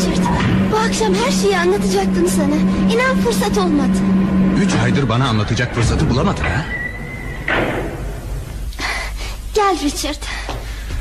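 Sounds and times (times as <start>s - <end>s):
door banging shut: 5.9s - 8.3s.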